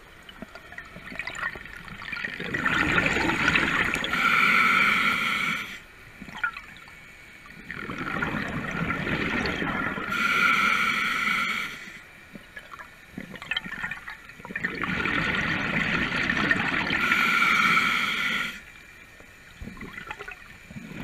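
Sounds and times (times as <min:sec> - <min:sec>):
scuba regulator breathing underwater: 0:02.9 - 0:05.8, 0:09.3 - 0:12.0, 0:16.8 - 0:18.7.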